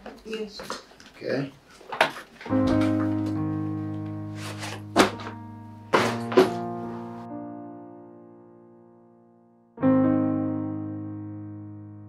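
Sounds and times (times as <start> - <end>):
electric piano chords: 2.5 - 12.0
sharp knocks and thuds: 5.0 - 6.7.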